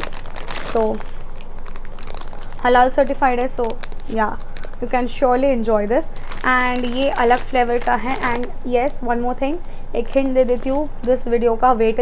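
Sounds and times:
plastic packet crinkling: 0.0s - 11.7s.

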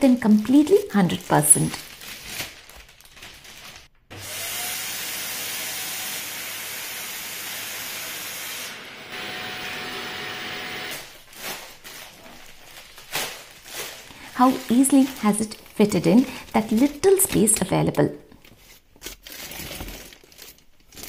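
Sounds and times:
plastic bag rustling: 0.2s - 4.0s, 11.0s - 21.0s
vacuum cleaner sucking air: 4.1s - 11.1s.

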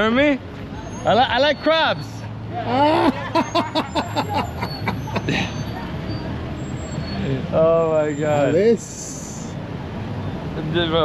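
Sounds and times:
cars driving past: 0.0s - 11.0s
tyres on the street: 0.0s - 11.0s.

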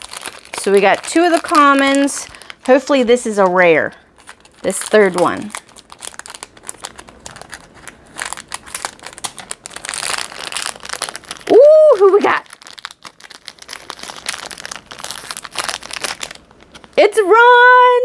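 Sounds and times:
packaging crinkling: 0.0s - 17.0s.

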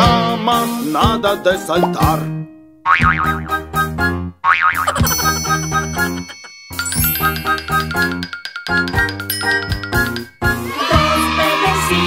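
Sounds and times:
bouncy children's music: 0.0s - 2.4s, 3.0s - 12.0s
cartoon boing: 2.9s - 3.6s, 4.4s - 5.6s.

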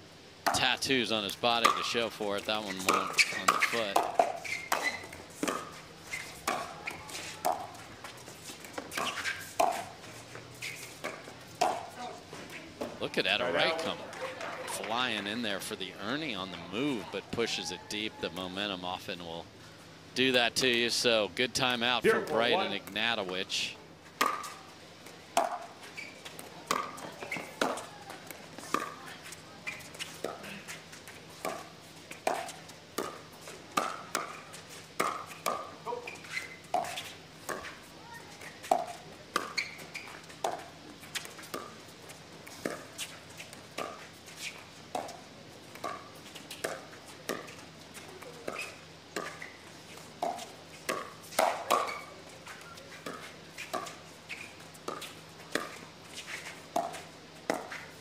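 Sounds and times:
paddles hitting plastic ball: 24.2s - 24.6s.

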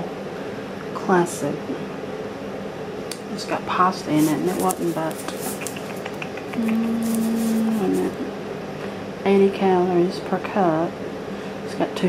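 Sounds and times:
woman humming: 5.5s - 8.4s.

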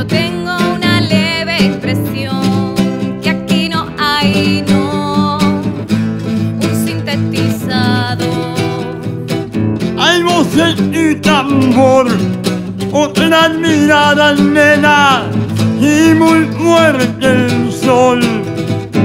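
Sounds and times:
person singing with vibrato: 0.0s - 9.2s, 12.9s - 19.0s
acoustic guitar chords: 0.0s - 19.0s.

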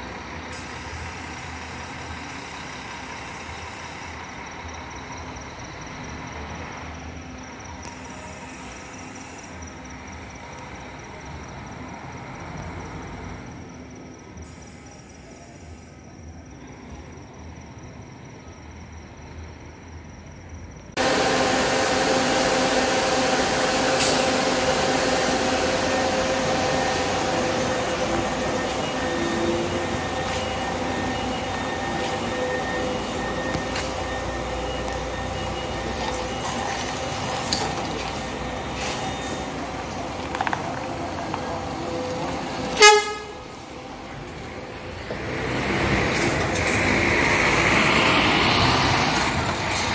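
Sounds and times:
bus engine idling whir: 0.0s - 49.9s
constant whine: 20.9s - 45.0s
bus horn toot: 42.7s - 43.6s.

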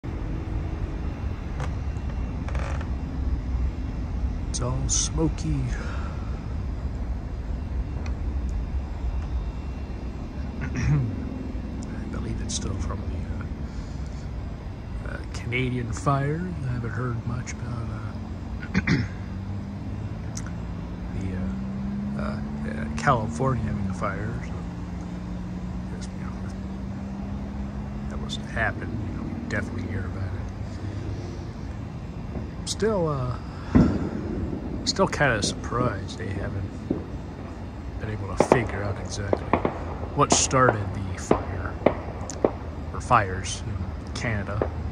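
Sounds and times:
machine engine humming: 0.0s - 44.9s
steady low rumble: 0.0s - 44.9s.

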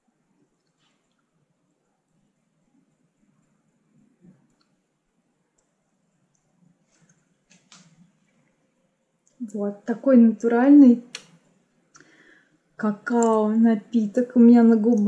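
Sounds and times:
soft lip clicks: 11.1s - 12.2s.

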